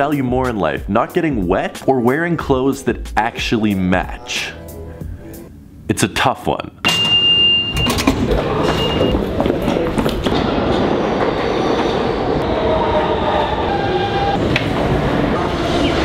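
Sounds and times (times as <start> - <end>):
high steady beep: 6.9 - 8.0
subway train rumble and rattle: 8.6 - 16.0
whining tones: 10.3 - 16.0.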